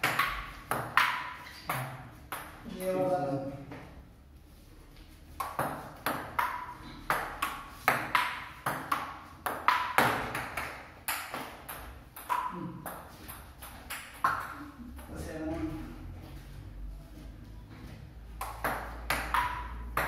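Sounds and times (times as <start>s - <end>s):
ball clicking off paddles: 5.4s - 14.6s.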